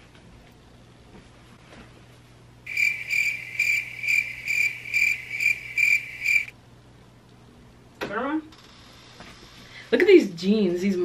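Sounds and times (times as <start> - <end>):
cricket chirping sound effect: 2.7 - 6.5.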